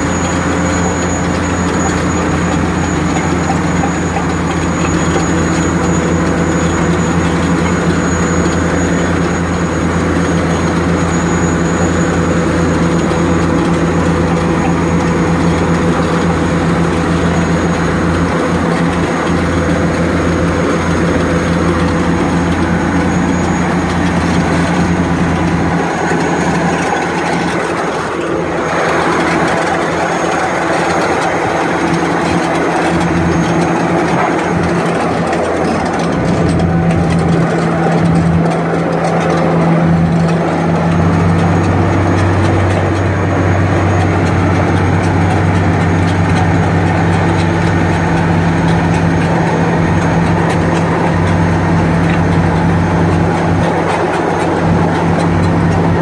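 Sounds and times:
heavy diesel engines under load: 0.0 - 56.0.

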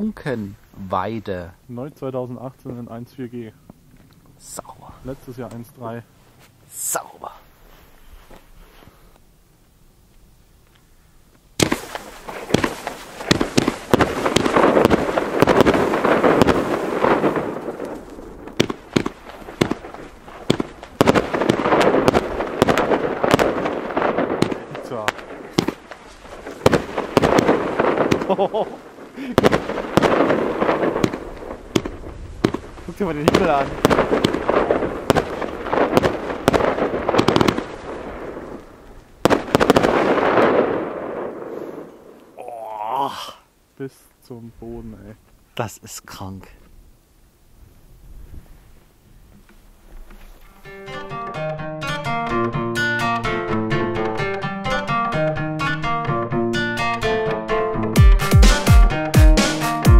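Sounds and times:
firework reports: 4.4 - 6.1, 6.7 - 7.9, 11.6 - 42.4
firework stars crackling: 11.6 - 42.4.

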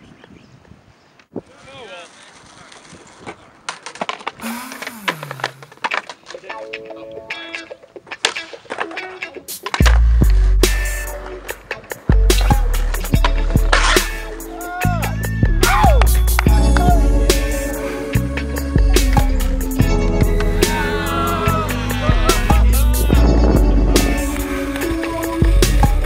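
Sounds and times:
skateboard clacks on concrete: 2.0 - 4.4, 5.2 - 14.3
music with heavy bass beat: 12.0 - 26.0.

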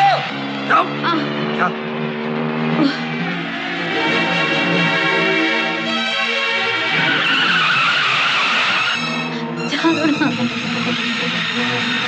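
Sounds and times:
film soundtrack chords: 0.0 - 12.0.

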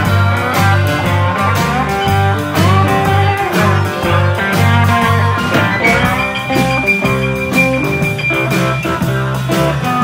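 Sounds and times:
electric guitar: 0.0 - 10.0
live band playing: 0.0 - 10.0.

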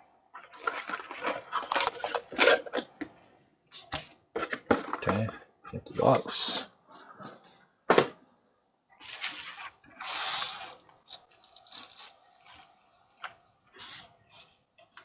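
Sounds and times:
card pack wrappers crinkling: 0.5 - 2.8, 9.2 - 13.4.

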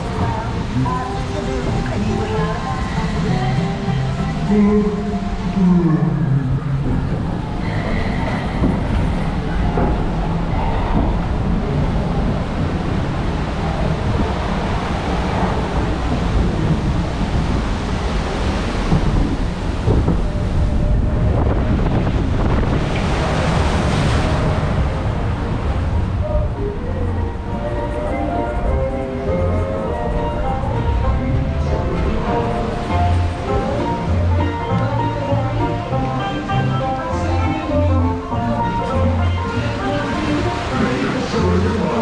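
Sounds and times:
water rushing and splashing: 0.0 - 42.0
wind rumble on microphone: 0.0 - 42.0.

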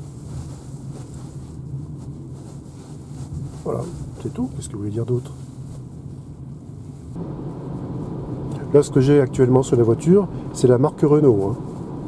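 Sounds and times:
low even hum: 0.0 - 12.0
tyre and road rumble: 0.0 - 12.0.

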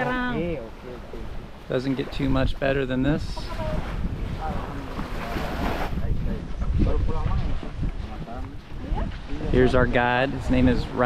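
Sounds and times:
small waves washing on shore: 0.0 - 11.0
wind buffeting microphone: 0.0 - 11.0.

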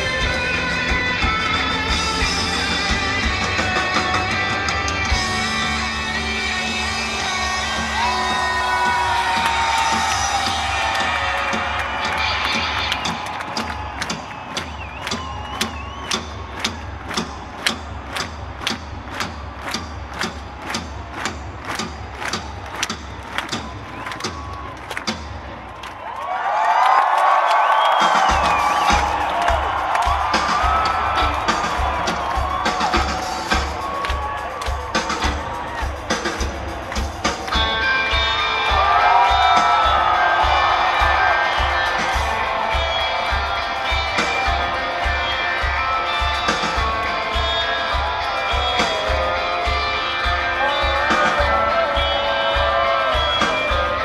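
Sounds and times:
crowd cheering and whistling: 0.0 - 54.0
drum beaten with sticks: 28.0 - 54.0.

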